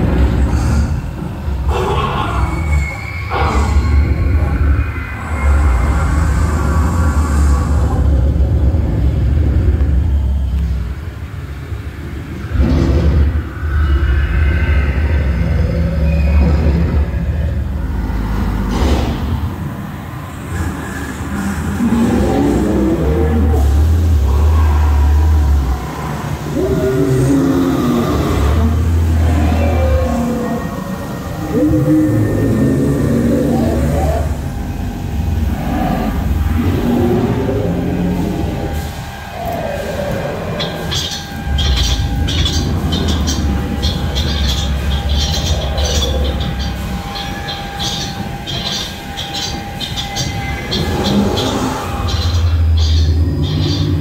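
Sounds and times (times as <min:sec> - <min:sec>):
deep loud rumble: 0:12.1 - 0:39.3.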